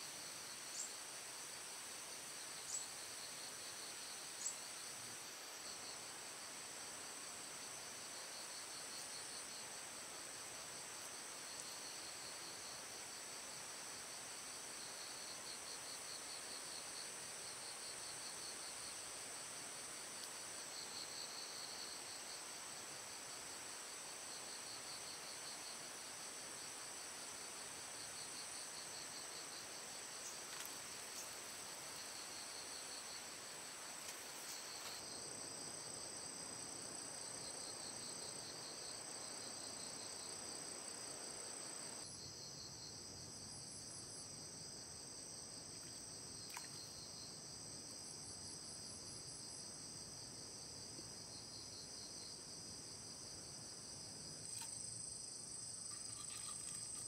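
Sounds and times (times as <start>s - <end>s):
faint steady hiss: 0.0s - 57.0s
insects trilling: 2.5s - 5.0s, 45.6s - 48.8s, 49.4s - 57.0s.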